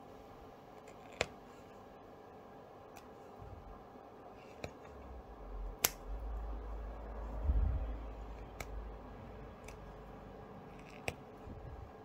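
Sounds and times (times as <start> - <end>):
low rumble: 5.1 - 10.0
scissors snipping thread: 5.8 - 6.1, 8.4 - 8.8, 10.7 - 11.3.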